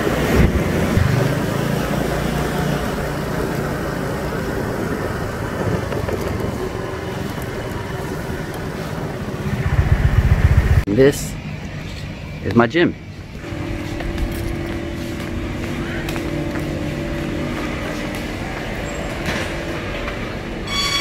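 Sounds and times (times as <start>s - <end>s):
small motorbike engine running: 0.0s - 10.8s
wind noise on microphone: 4.6s - 10.8s.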